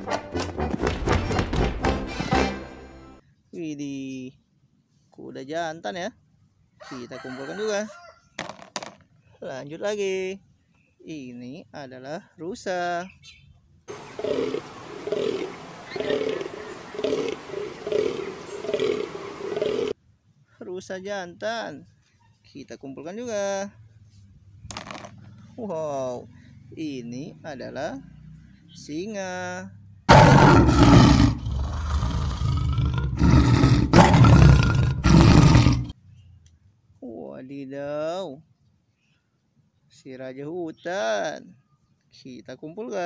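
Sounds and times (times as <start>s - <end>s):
deer groaning: 13.9s - 20.0s, 30.1s - 36.0s
lion roaring: 13.9s - 20.0s, 30.1s - 36.0s
steady hiss: 13.9s - 20.0s.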